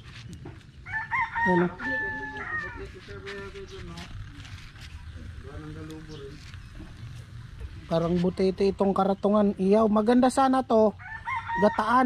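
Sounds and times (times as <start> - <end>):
rooster crowing: 0.8 - 3.2, 11.0 - 12.0.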